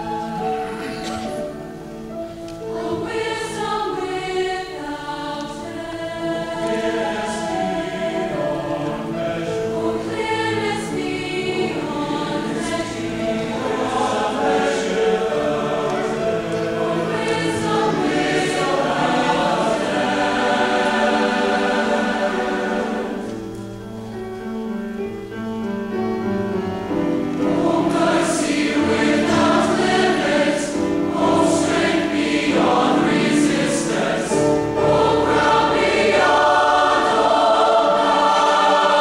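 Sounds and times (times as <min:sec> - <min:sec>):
large choir singing in harmony: 0:00.0 - 0:39.0.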